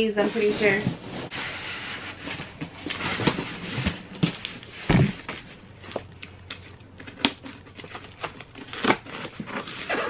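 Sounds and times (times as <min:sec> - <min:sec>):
cardboard rustling and scraping: 0:00.0 - 0:10.0.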